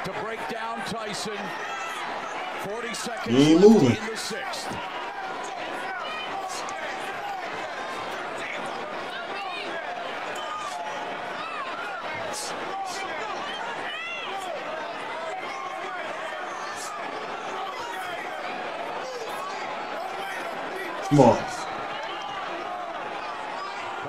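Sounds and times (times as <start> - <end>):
people shouting: 3.3 - 4.1, 21.0 - 21.6
crowd din: 3.3 - 4.8, 21.0 - 21.8.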